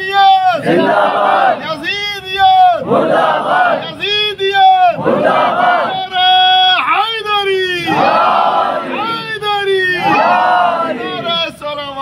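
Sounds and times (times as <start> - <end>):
crowd wailing together: 0.5 - 1.7, 2.8 - 4.0, 5.0 - 6.5, 7.8 - 11.4
man's amplified wavering cries: 5.6 - 8.3.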